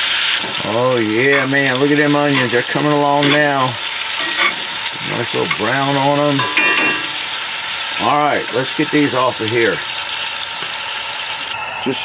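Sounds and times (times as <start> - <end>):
liver frying in a skillet: 0.0 - 11.6.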